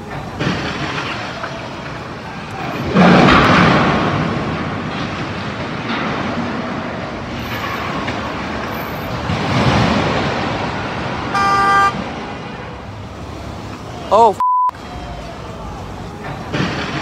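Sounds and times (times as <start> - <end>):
city street traffic: 0.0 - 17.0
car horn blast: 11.3 - 12.0.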